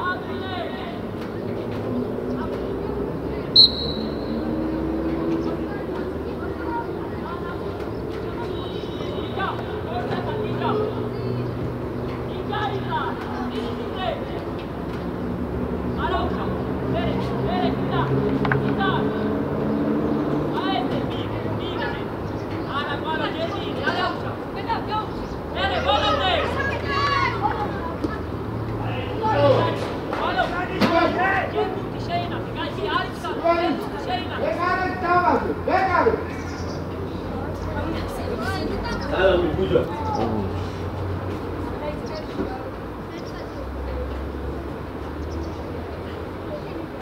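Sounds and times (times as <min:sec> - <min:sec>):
voices calling out: 0:00.0 - 0:47.0
sharp whistle blast: 0:03.6 - 0:04.4.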